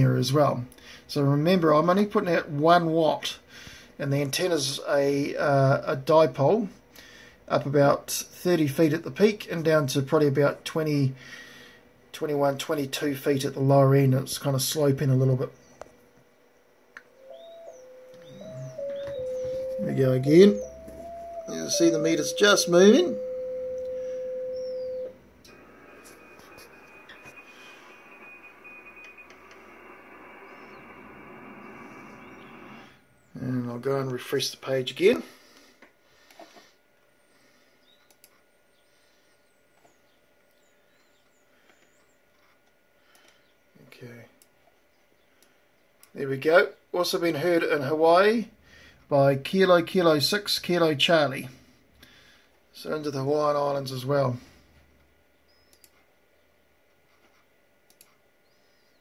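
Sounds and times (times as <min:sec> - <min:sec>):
faint high chirps: 0:17.0 - 0:33.6, 0:55.3 - 0:56.5
digital-mode tone jumping pitch: 0:17.1 - 0:33.0
faint computer mouse clicks: 0:38.0 - 0:38.4, 0:57.9 - 0:58.2.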